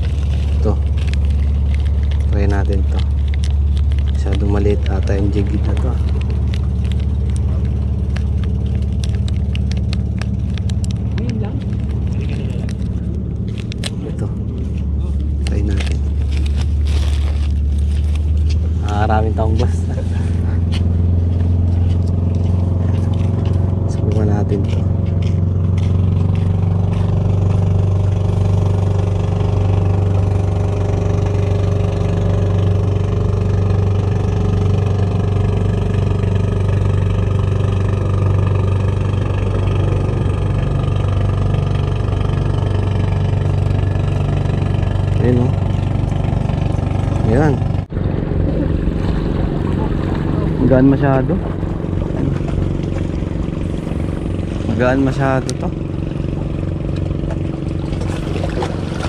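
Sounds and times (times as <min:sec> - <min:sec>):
handling clicks and rustles: 0:00.0 - 0:47.9
low engine drone: 0:00.0 - 0:59.0.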